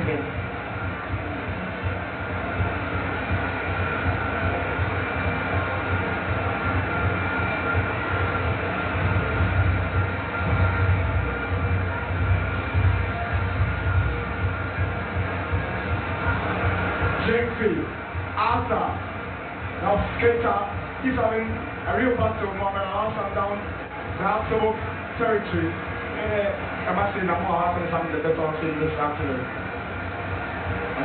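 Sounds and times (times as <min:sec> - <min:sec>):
stadium crowd noise: 0:00.0 - 0:31.0.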